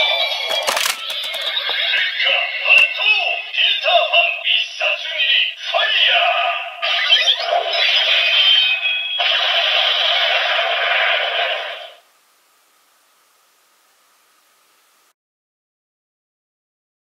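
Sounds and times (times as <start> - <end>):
toy electronic music with sung vocals: 0.0 - 9.4.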